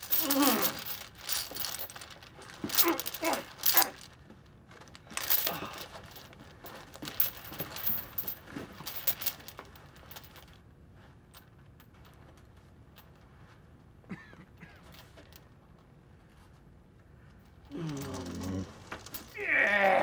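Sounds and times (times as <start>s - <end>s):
bindings rustling and crinkling: 0.0s - 14.0s, 14.8s - 20.0s
man grunting and straining: 0.1s - 0.8s, 2.7s - 4.0s, 5.3s - 5.9s, 17.7s - 20.0s.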